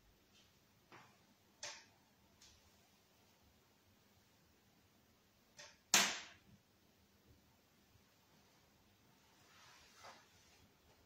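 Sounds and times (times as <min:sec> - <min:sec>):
sharp knock: 0:05.9 - 0:06.4.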